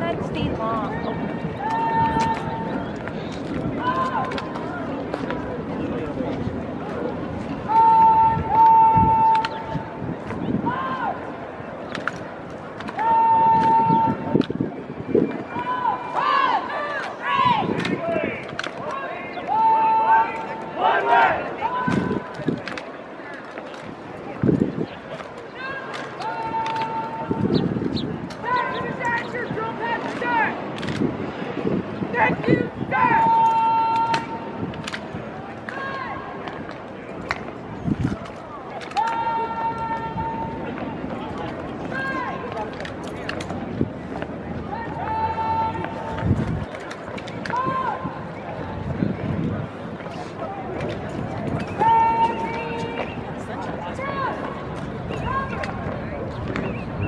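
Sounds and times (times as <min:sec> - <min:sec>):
crowd chatter: 0:00.0 - 0:57.0
voices calling out: 0:00.0 - 0:57.0
person shouting command: 0:07.7 - 0:09.3, 0:32.1 - 0:34.3
drill rifles slapped and handled: 0:30.8 - 0:31.0.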